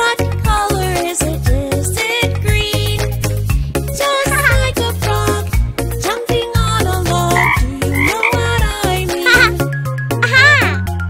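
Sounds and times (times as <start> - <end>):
upbeat children's song music: 0.0 - 11.0
cartoon frog croaking: 4.3 - 4.7, 7.3 - 9.6, 10.2 - 10.8.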